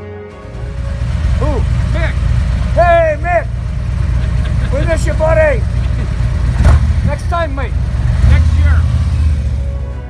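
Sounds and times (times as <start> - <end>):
motorcycle engine idling: 0.4 - 10.0
man speaking: 1.4 - 3.6, 4.6 - 5.8, 7.0 - 9.0.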